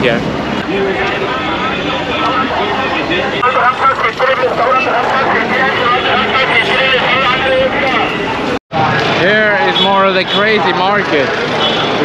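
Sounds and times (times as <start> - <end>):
many people talking: 0.0 - 12.0
vehicle engines passing: 0.0 - 12.0.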